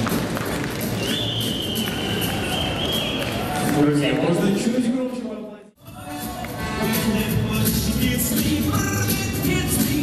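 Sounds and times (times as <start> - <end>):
audience applauding and cheering: 0.0 - 4.2
long high whistle: 1.0 - 3.4.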